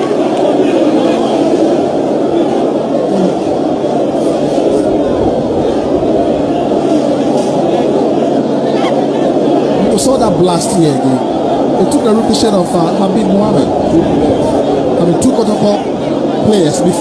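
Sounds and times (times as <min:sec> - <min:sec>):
stadium crowd chattering: 0:00.0 - 0:17.0.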